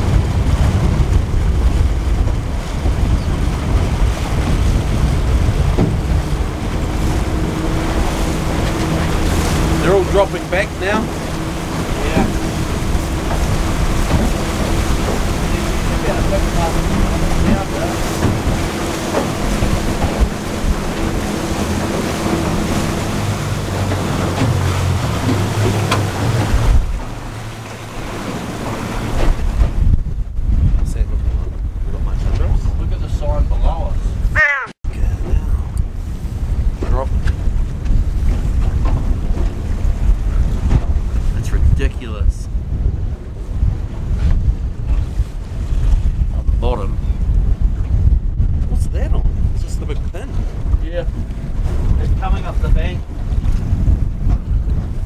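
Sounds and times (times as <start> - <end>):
outboard engine running: 0.0 - 55.0
water rushing past hull: 0.0 - 55.0
wind buffeting microphone: 0.0 - 55.0.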